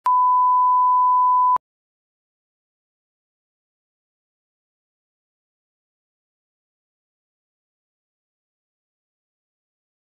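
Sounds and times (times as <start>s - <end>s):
steady test tone beep: 0.0s - 1.6s.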